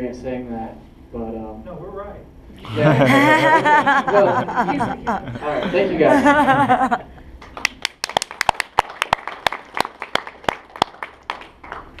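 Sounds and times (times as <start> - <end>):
people clapping: 7.4 - 12.0.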